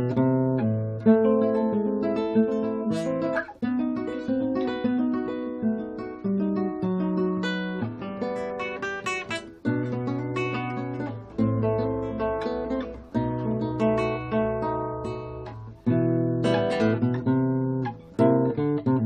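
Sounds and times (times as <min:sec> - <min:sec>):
solo acoustic guitar piece: 0:00.0 - 0:19.0.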